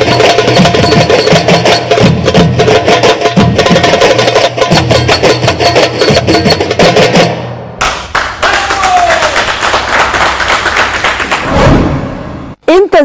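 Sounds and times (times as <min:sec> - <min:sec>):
hand drum ensemble playing: 0:00.0 - 0:07.7
applause: 0:07.8 - 0:11.6.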